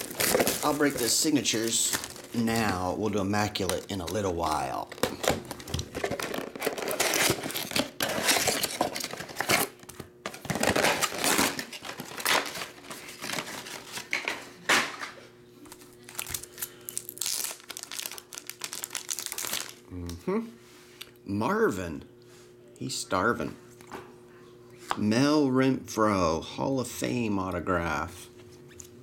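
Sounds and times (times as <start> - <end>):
plastic wrapping crinkling and tearing: 0.0 - 14.1, 15.7 - 19.8.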